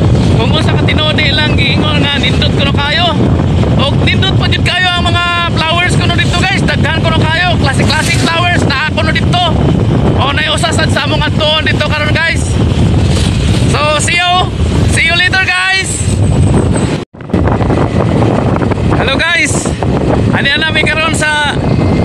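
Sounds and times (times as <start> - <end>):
wind buffeting microphone: 0.0 - 22.0
person talking: 0.3 - 3.2, 3.8 - 9.6, 10.2 - 12.6, 19.0 - 21.6.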